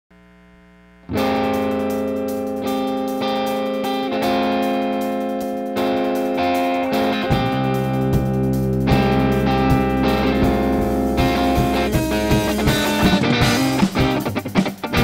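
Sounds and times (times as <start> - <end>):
distorted electric guitar chords: 0.2 - 15.0
bass and drums: 1.1 - 15.0.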